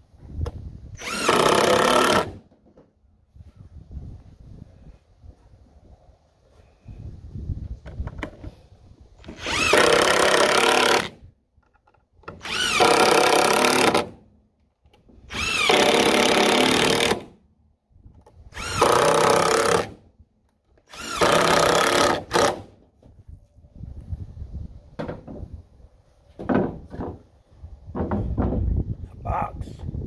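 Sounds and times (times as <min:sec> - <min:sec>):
impact driver driving screws into wood: 0:01.0 - 0:02.6, 0:09.2 - 0:14.2, 0:15.2 - 0:17.4, 0:18.3 - 0:20.0, 0:20.7 - 0:22.8.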